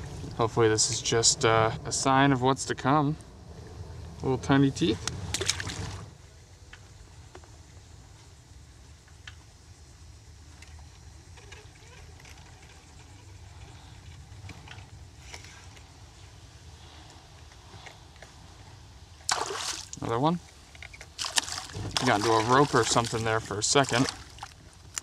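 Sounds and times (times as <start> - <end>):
faint steady background noise: 0.0 - 25.0
fish splashing into water: 5.3 - 6.1, 19.3 - 20.0, 21.1 - 24.6.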